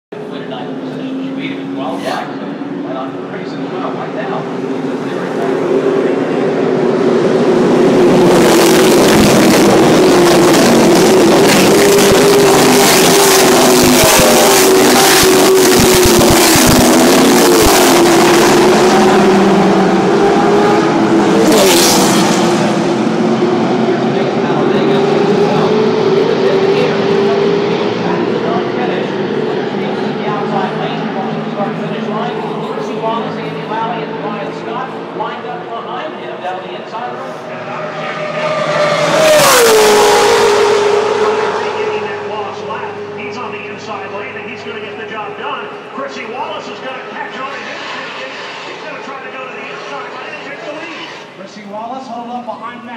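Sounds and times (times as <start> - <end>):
race trucks at full throttle: 0.1 - 52.9.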